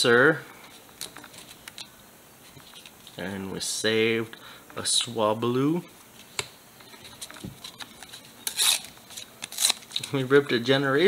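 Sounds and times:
card tearing: 0:08.4 - 0:10.1.

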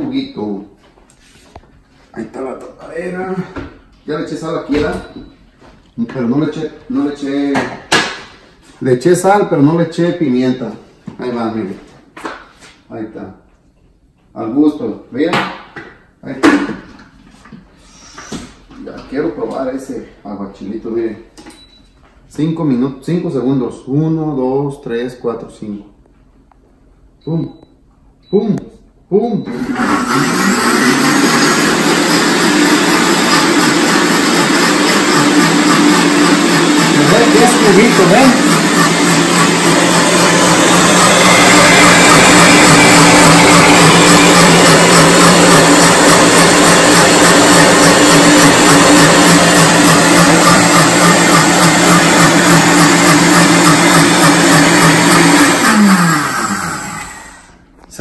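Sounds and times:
blender running: 0:29.5 - 0:57.6.

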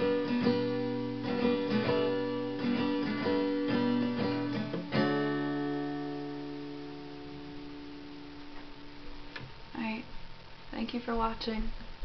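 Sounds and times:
person speaking: 0:10.7 - 0:11.8.

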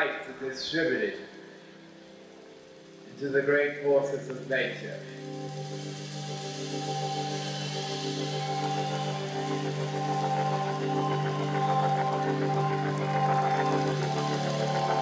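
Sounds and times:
music with low drone and chords: 0:00.0 - 0:15.0.

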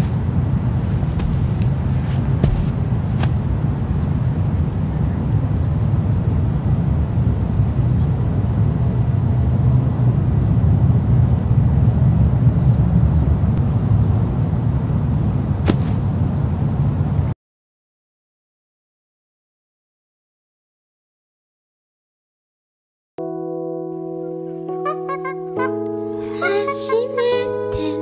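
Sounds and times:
steady low rumbling: 0:00.0 - 0:17.3.

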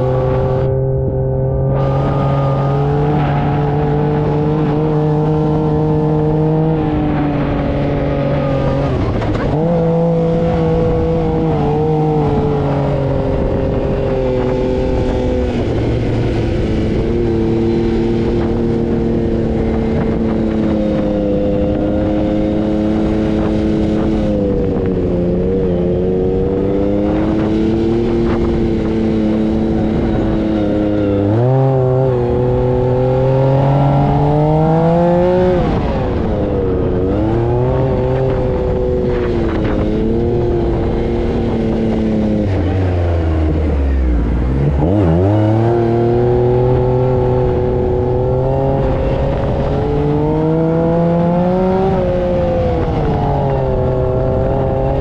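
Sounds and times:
buggy engine revving: 0:00.0 - 0:55.0
constant rushing noise: 0:00.0 - 0:55.0.

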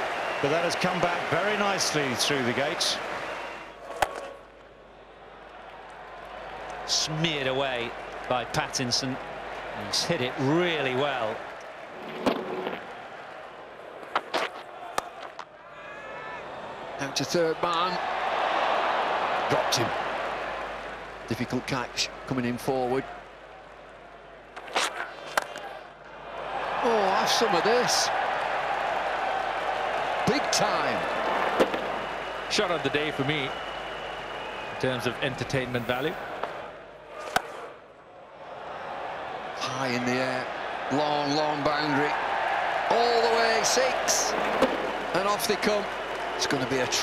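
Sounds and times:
stadium crowd noise: 0:00.0 - 0:47.0
bat cracking on ball: 0:24.6 - 0:25.6.

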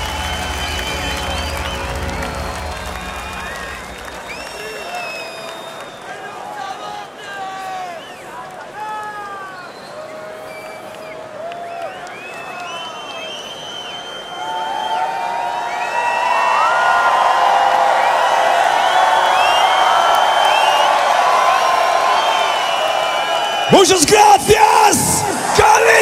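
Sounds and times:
crowd cheering and yelling: 0:00.0 - 0:26.0.

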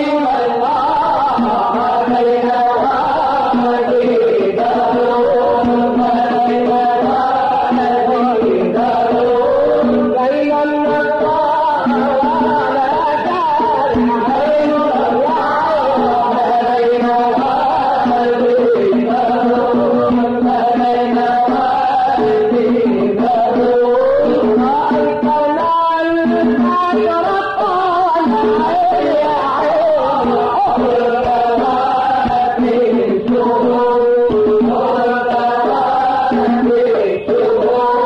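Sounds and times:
man singing ornamented melody: 0:00.0 - 0:38.0.

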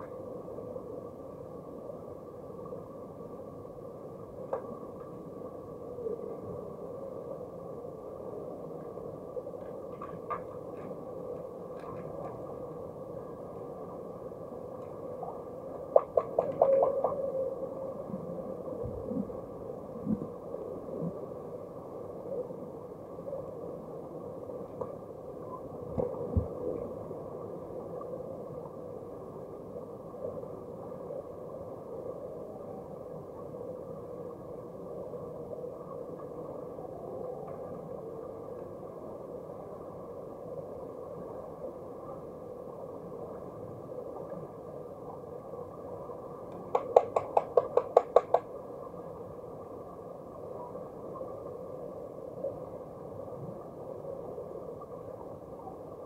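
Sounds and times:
muffled underwater hum: 0:00.0 - 0:40.0
underwater knocks: 0:46.7 - 0:48.5.

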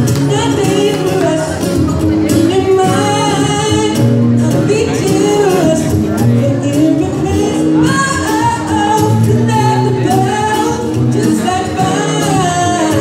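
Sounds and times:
acoustic guitar: 0:00.0 - 0:13.0
man singing into a microphone: 0:00.0 - 0:13.0.

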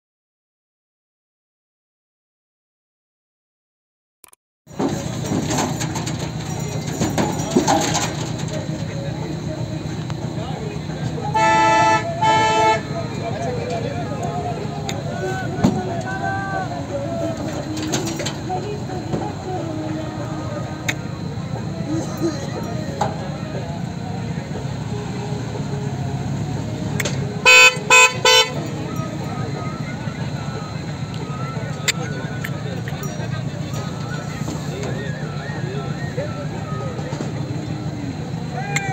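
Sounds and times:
vehicle horn honking: 0:11.2 - 0:13.1, 0:27.4 - 0:29.8.

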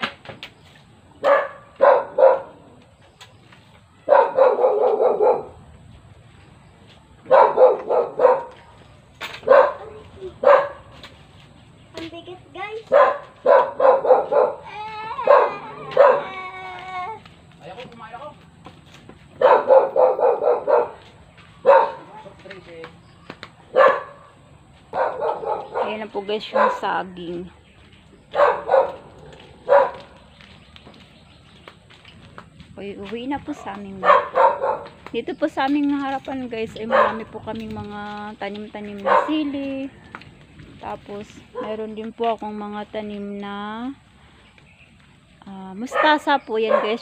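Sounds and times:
dog barking: 0:01.2 - 0:02.6, 0:04.1 - 0:05.6, 0:07.3 - 0:08.6, 0:09.4 - 0:11.0, 0:12.9 - 0:16.4, 0:19.4 - 0:22.2, 0:23.7 - 0:24.3, 0:24.9 - 0:26.9, 0:28.3 - 0:30.1, 0:34.0 - 0:35.0, 0:36.9 - 0:37.4, 0:39.0 - 0:39.5, 0:45.9 - 0:47.0
dog whining: 0:14.6 - 0:17.2.

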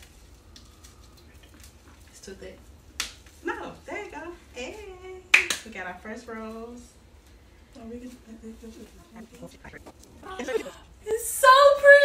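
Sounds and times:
plastic wrap crinkling: 0:00.0 - 0:03.8
low room hum: 0:00.0 - 0:12.0.

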